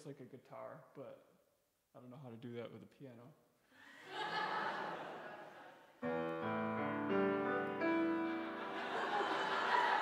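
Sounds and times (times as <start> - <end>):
background noise: 0.0 - 10.0
grand piano chords: 6.0 - 10.0.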